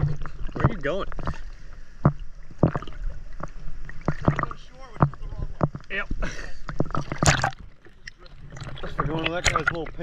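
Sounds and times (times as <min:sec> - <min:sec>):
small waves slapping and sloshing: 0:00.0 - 0:10.0.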